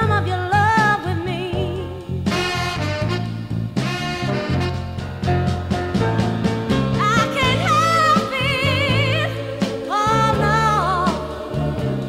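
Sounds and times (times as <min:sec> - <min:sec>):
soul ballad with high vocal: 0:00.0 - 0:02.6, 0:06.9 - 0:12.0.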